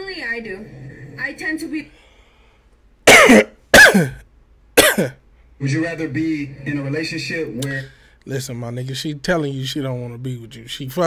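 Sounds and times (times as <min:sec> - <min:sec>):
man coughing: 0:03.1 - 0:04.2, 0:04.8 - 0:05.2.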